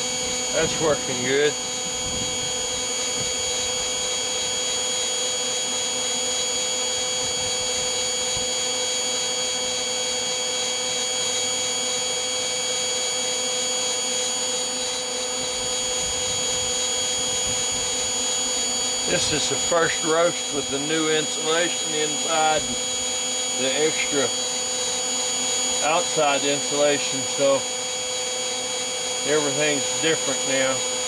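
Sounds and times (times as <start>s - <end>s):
hot-air blower running: 0.0s - 31.0s.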